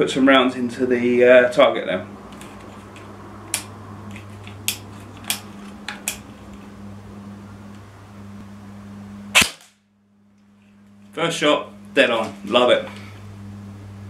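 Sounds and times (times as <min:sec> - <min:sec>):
airsoft gun snaps: 0:09.4 - 0:09.8.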